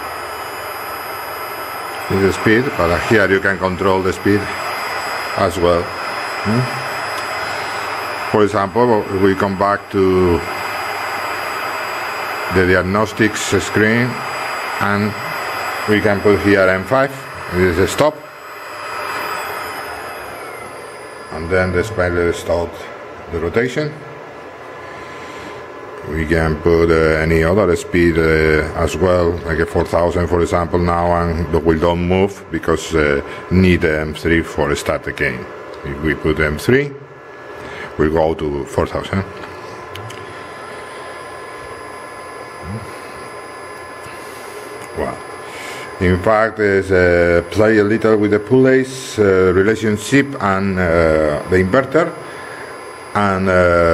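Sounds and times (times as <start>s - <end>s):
spindle spinning down with hiss: 0.0s - 22.4s
faint falling whine: 0.0s - 53.9s.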